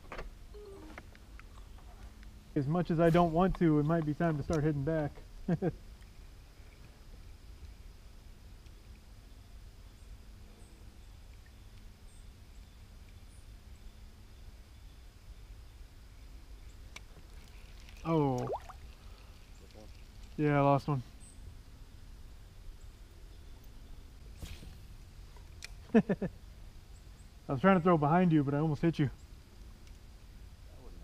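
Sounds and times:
low steady river rumble: 0.0 - 31.0.

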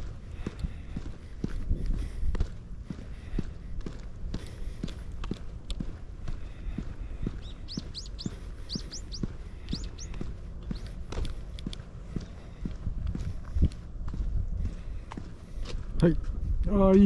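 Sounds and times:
walking footsteps: 0.0 - 17.0
bird chirping: 7.2 - 11.0.

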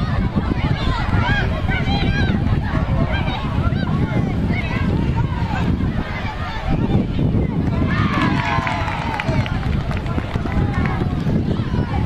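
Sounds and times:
players and spectators shouting: 0.0 - 12.0
wind rumble on microphone: 0.0 - 12.0.

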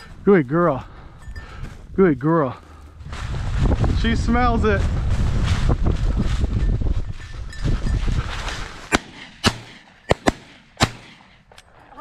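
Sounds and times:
footsteps through dry grass: 0.0 - 9.8
wind on microphone: 3.0 - 9.8
shotgun shots: 8.9 - 11.4.

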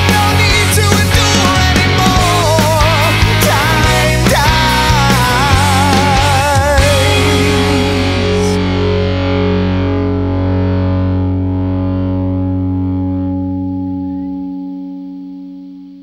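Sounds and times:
bass guitar: 0.0 - 16.0
distorted electric guitar chord: 0.0 - 16.0.

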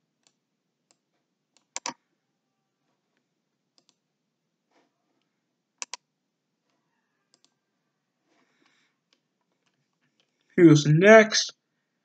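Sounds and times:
computer mouse clicking: 1.6 - 2.0, 3.8 - 4.0, 5.8 - 6.1, 7.3 - 7.5.

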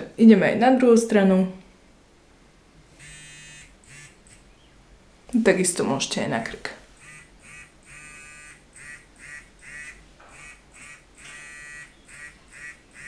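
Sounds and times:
pulsing electronic buzz: 2.9 - 4.7, 6.8 - 13.0.

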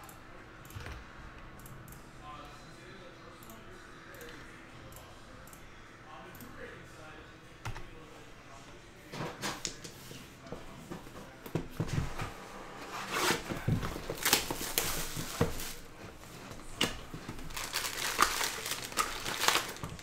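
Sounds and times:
plastic wrap crinkling and tearing: 13.9 - 15.9, 16.7 - 20.0.

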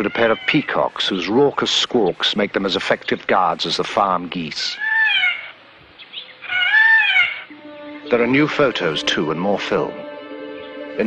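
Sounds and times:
peacock squawking: 0.0 - 1.2, 4.6 - 9.0.

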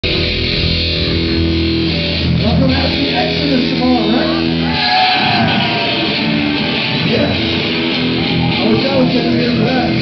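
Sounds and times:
bass guitar ringing notes: 0.0 - 10.0
electric guitar ringing notes: 0.0 - 10.0.

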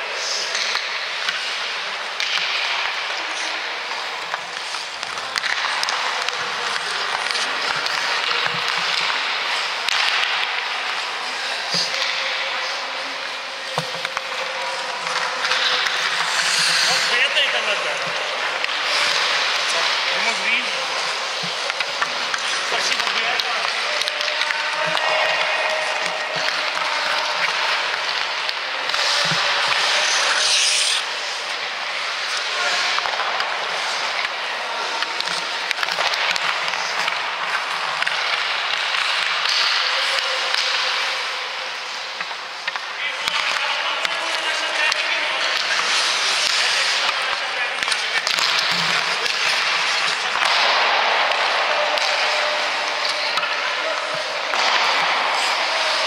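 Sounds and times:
ice skates scraping on ice: 0.1 - 56.0
faint knocks of sticks and pucks: 0.2 - 56.0.

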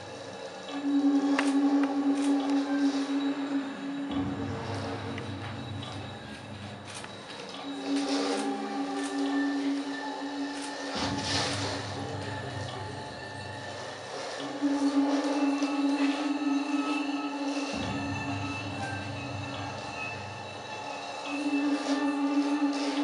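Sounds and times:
deep drone: 0.0 - 23.0.

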